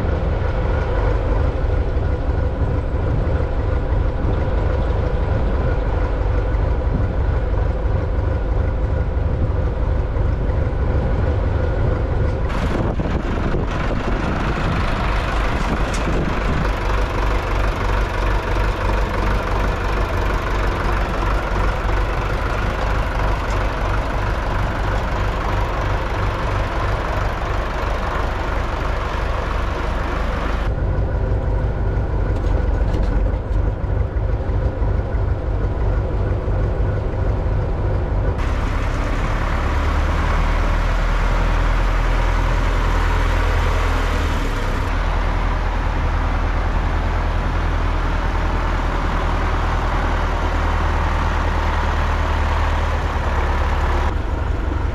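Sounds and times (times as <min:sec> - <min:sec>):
tractor diesel engine running: 0:00.0 - 0:54.9.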